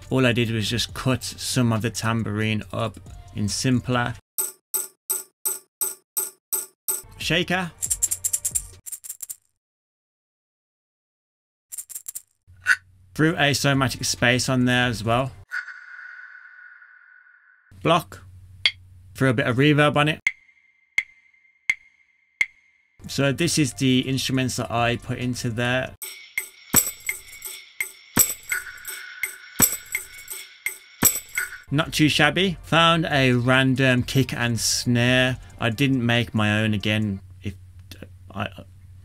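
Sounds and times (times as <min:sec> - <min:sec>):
tambourine hi-hat pattern: 0:04.4 - 0:07.1, 0:07.7 - 0:09.4, 0:26.0 - 0:31.7
wood block knocks with ringing: 0:04.4 - 0:07.1, 0:20.3 - 0:22.7, 0:26.0 - 0:31.7.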